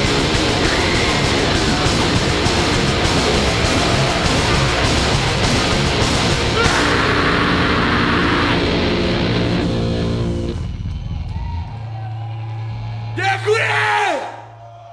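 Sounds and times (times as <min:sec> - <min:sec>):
drums and cymbals: 0:00.0 - 0:13.1
distorted guitars: 0:00.0 - 0:13.5.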